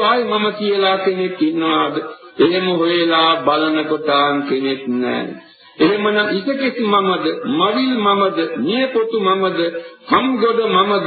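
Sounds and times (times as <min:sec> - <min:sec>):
person chanting: 0:00.0 - 0:11.0.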